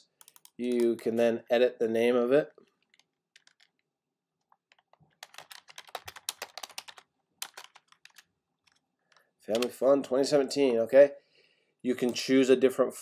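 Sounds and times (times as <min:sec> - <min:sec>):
typing on computer keyboard: 0:00.2 - 0:01.0, 0:02.8 - 0:03.8, 0:04.4 - 0:09.8.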